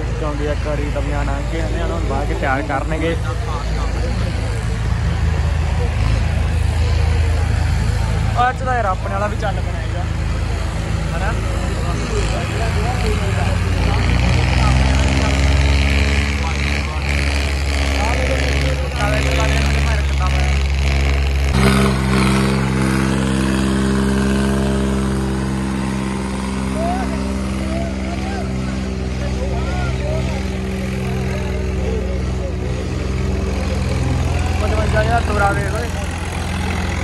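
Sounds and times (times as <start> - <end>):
tractor diesel engine running: 0.0 - 37.0
voices in background: 0.0 - 37.0.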